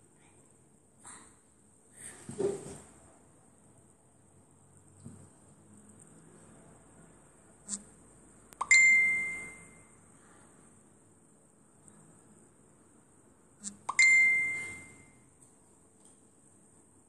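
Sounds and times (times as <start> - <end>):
ringing ding: 8.6 - 9.8, 13.9 - 15.2.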